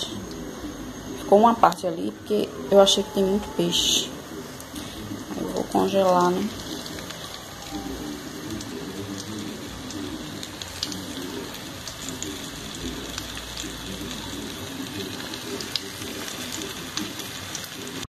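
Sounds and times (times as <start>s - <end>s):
fish frying in hot oil: 0.0s - 18.0s.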